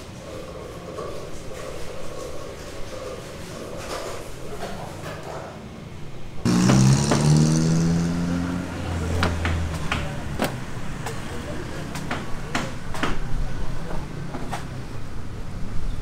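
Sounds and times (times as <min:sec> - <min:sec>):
vehicle engine: 0:06.4 - 0:12.2
sharp knocks: 0:06.5 - 0:07.7.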